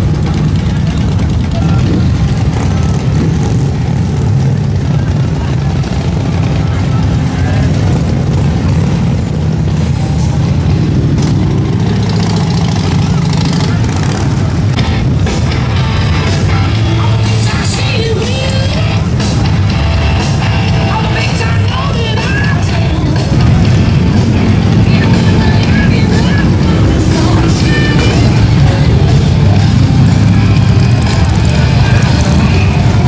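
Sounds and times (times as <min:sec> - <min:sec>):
crowd voices: 0:00.0 - 0:33.0
motorcycles rumbling past: 0:00.0 - 0:33.0
music: 0:13.8 - 0:33.0.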